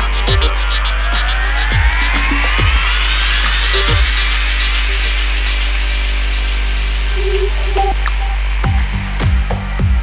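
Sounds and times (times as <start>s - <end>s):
rising synth sweep: 0.0s - 9.2s
buzzing synthesizer texture: 0.0s - 10.0s.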